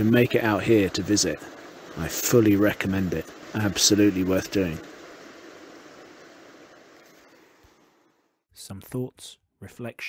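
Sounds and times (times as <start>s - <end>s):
river water rushing over rocks: 0.3s - 7.8s.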